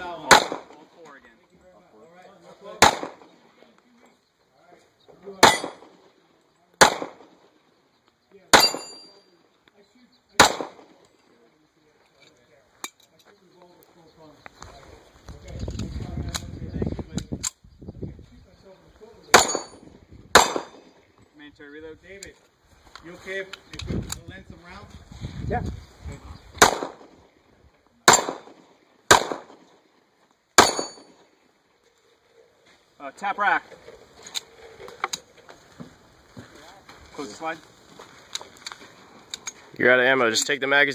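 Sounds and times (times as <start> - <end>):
pistol shots: 0.2 - 0.9, 2.8 - 3.4, 5.4 - 6.1, 6.8 - 7.5, 8.5 - 9.2, 10.4 - 11.0, 19.3 - 21.0, 26.6 - 27.2, 28.0 - 29.8, 30.6 - 31.2
steel plate ringing clang: 8.6 - 9.2, 19.4 - 19.8, 30.6 - 31.2.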